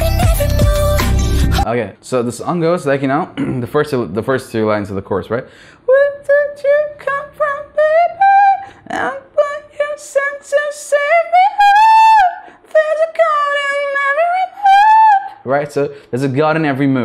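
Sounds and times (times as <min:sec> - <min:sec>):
man singing unaccompanied: 0:00.0 - 0:01.6.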